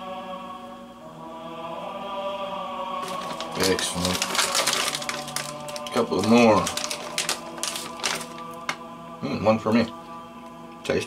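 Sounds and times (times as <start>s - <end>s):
plastic package crinkling: 3.0s - 8.8s.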